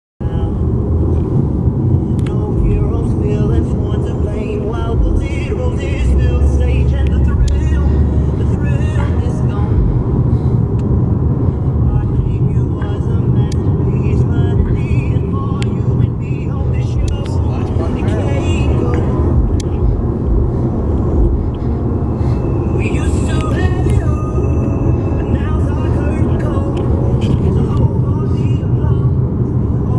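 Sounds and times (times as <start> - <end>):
car cabin road noise: 0.2 - 29.9
music playing: 0.2 - 29.9.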